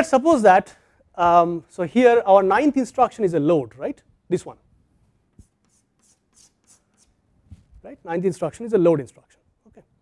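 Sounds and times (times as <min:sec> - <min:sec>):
chalk scratching on chalkboard: 0:05.3 - 0:07.8.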